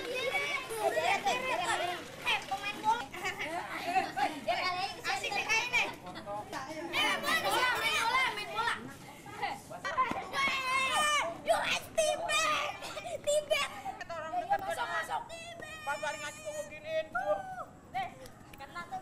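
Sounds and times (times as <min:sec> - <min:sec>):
children shouting and chattering: 0:00.0 - 0:19.0.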